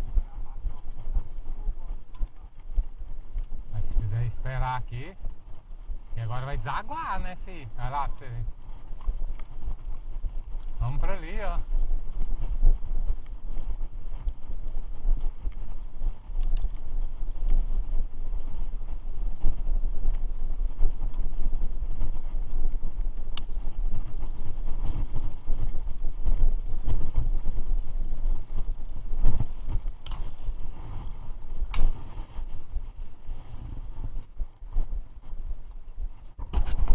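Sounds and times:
mountain bike rumbling and rattling: 0.0 - 36.9
wind buffeting microphone: 0.0 - 36.9.

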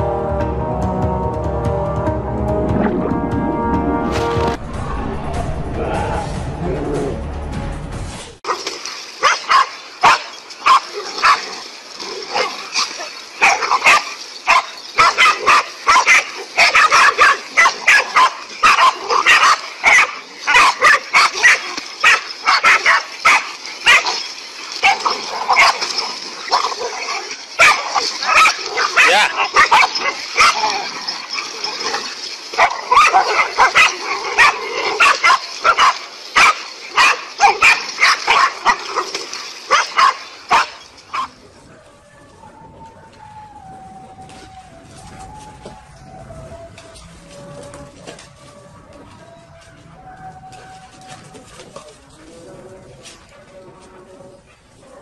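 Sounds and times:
dogs barking: 8.5 - 42.3, 53.0 - 55.0.

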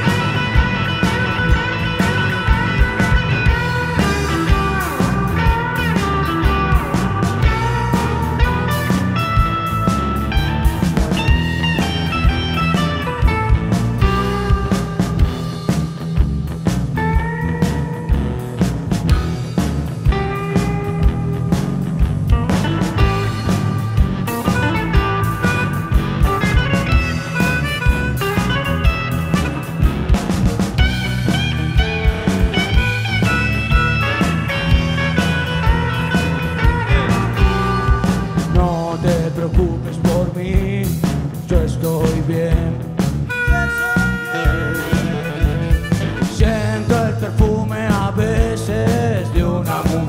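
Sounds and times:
harmonica: 0.0 - 16.0, 22.5 - 39.5, 42.4 - 50.0
bass: 0.0 - 50.0
blues-rock band playing: 0.0 - 50.0
electric guitar: 0.0 - 50.0
steady drum beat: 0.0 - 50.0.

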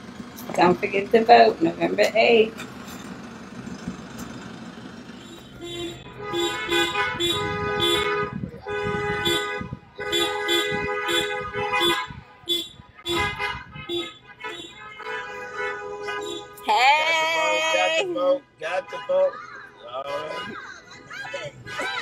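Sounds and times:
car engines and road noise: 0.0 - 22.0
car horns honking: 5.0 - 17.0, 17.7 - 22.0.

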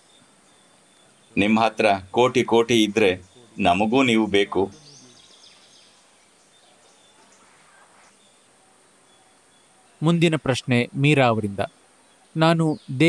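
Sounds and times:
faint chirps: 0.0 - 13.0
man speaking: 1.3 - 5.2, 10.0 - 11.7, 12.4 - 13.0.

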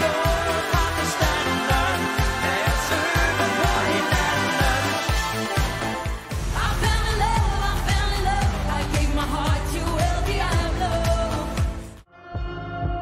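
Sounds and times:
pop song with lead vocal: 0.0 - 13.0.

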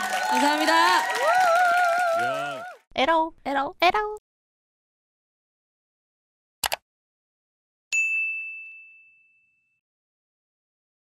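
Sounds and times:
bell-like notification ding: 7.9 - 9.8.

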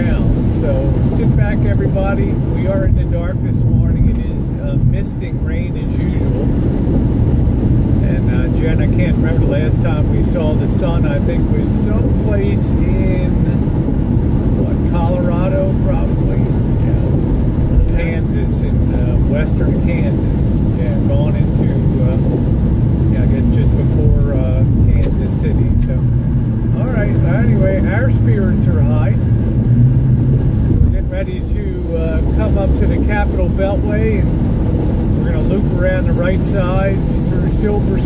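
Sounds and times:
car road and engine noise: 0.0 - 38.0.

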